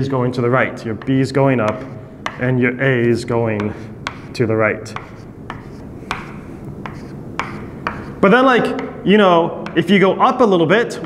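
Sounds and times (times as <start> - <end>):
chalk scratching: 0.8 - 9.0
chalk tapping on blackboard: 0.9 - 2.6, 3.5 - 9.0, 9.6 - 10.0.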